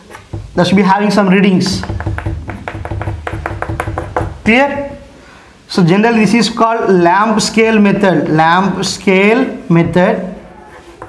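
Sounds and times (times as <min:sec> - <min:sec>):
chalk tapping on blackboard: 0:00.0 - 0:05.0.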